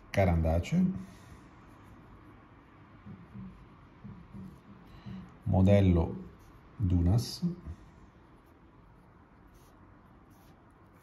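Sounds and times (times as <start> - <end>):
fountain pen scratching on paper: 8.2 - 11.0.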